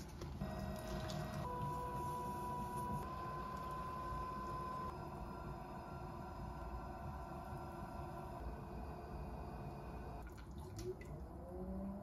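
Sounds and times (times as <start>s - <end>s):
potter's wheel motor whine: 0.4s - 10.2s.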